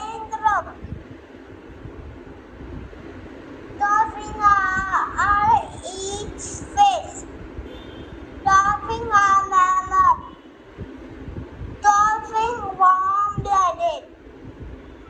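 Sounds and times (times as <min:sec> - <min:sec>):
boy singing high: 0:03.8 - 0:07.3, 0:08.5 - 0:10.3, 0:11.8 - 0:14.1.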